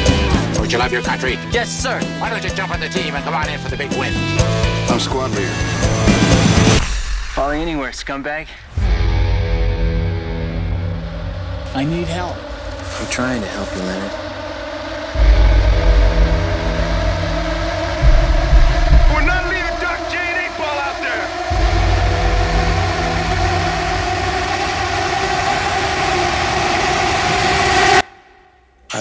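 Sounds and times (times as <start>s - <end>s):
droning soundtrack layer: 0.0s - 29.0s
heavy low rumbling: 4.2s - 28.9s.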